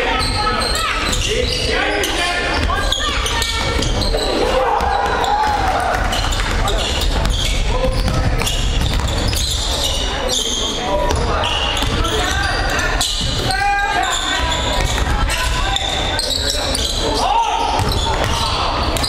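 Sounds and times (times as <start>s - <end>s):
sneakers squeaking: 0.0s - 19.0s
spectators talking and calling out: 0.0s - 19.0s.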